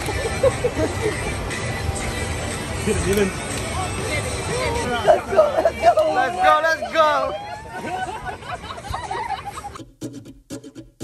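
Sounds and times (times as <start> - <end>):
people laughing: 0.0 - 1.4, 4.7 - 9.8.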